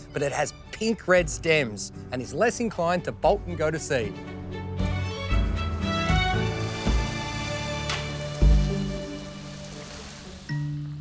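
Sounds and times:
background music: 0:00.0 - 0:11.0
watering can sprinkling water: 0:06.0 - 0:11.0.

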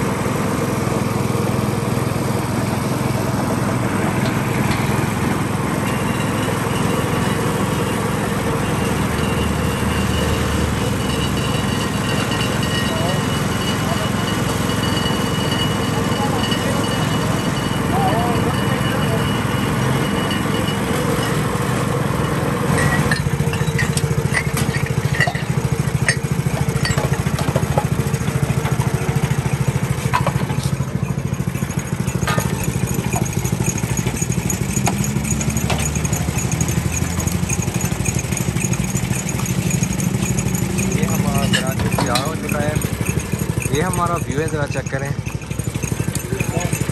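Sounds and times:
motorized juice crusher running: 0:00.0 - 0:46.9
glassware clinking: 0:08.6 - 0:27.8, 0:30.0 - 0:46.9.

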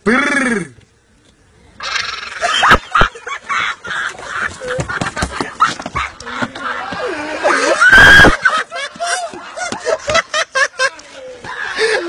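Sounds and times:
boys laughing hysterically: 0:02.2 - 0:12.0.

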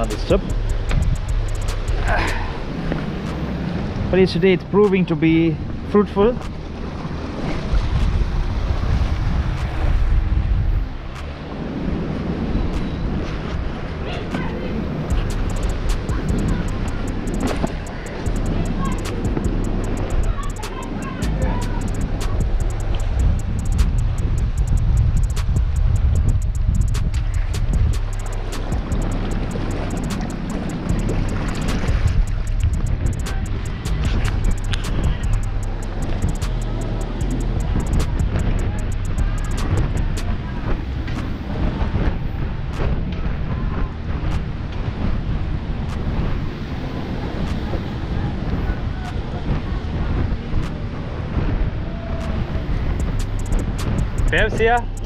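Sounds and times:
music: 0:00.0 - 0:55.0
wind buffeting microphone: 0:00.0 - 0:55.0
sea surf on rocky shore: 0:01.9 - 0:19.2, 0:39.6 - 0:53.0.

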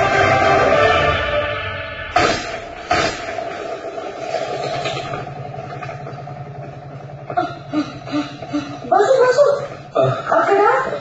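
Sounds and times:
vehicle engine running: 0:03.3 - 0:11.0.

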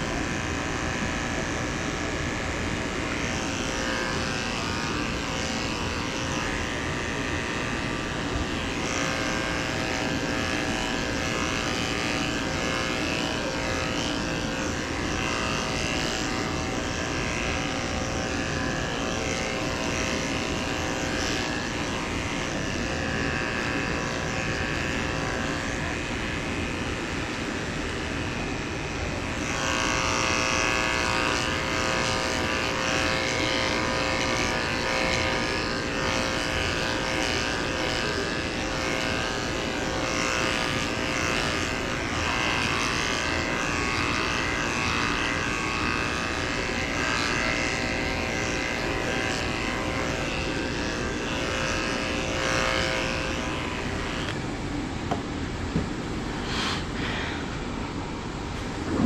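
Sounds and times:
electric clippers running: 0:00.0 - 0:57.8, 0:58.4 - 0:59.0.

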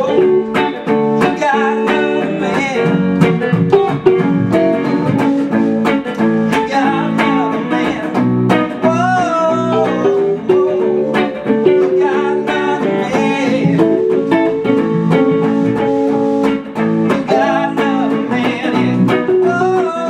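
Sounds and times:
keyboard playing: 0:00.0 - 0:07.6, 0:08.2 - 0:20.0
electric guitar: 0:00.0 - 0:20.0
person singing: 0:00.0 - 0:20.0.

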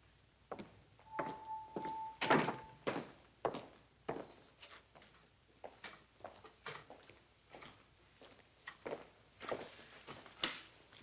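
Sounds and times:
footsteps on hard floor: 0:00.5 - 0:04.4
steady high tone: 0:01.0 - 0:02.8.

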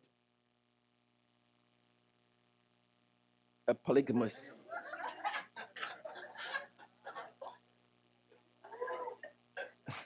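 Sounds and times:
laughter in choppy bursts: 0:04.7 - 0:07.6.

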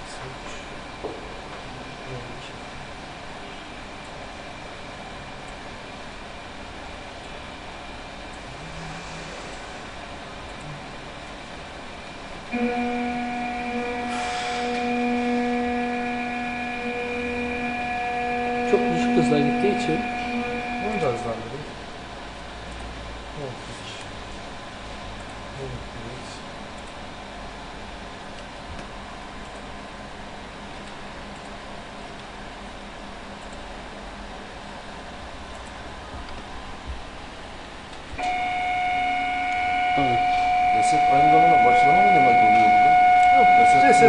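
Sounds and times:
people talking: 0:00.0 - 0:00.7, 0:01.7 - 0:02.6, 0:18.7 - 0:21.8, 0:23.4 - 0:24.1, 0:25.6 - 0:26.4, 0:40.0 - 0:42.8, 0:43.4 - 0:44.0
router motors humming and whining: 0:12.5 - 0:21.9.

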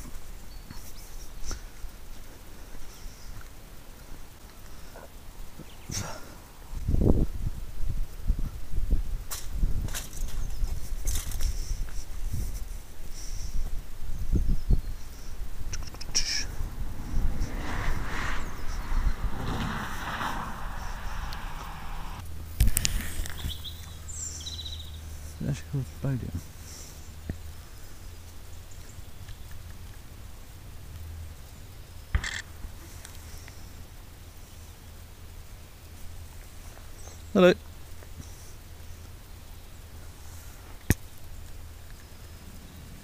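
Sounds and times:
bird chirps: 0:23.3 - 0:25.1.

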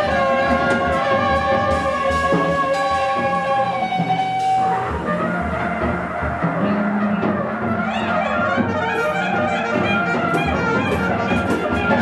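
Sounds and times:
live jazz band playing: 0:00.0 - 0:12.0.

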